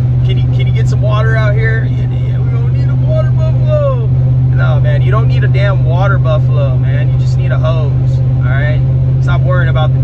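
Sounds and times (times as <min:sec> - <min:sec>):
car engine drone: 0:00.0 - 0:10.0
road noise: 0:00.0 - 0:10.0
man talking: 0:00.2 - 0:10.0.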